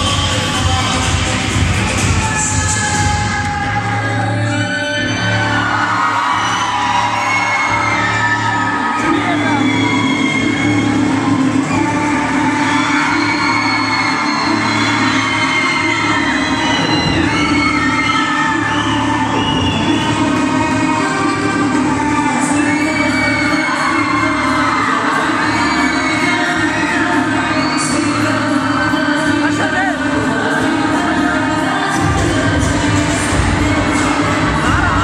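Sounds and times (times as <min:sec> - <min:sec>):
loud dance music: 0:00.0 - 0:35.0
audience cheering and whooping: 0:01.9 - 0:35.0.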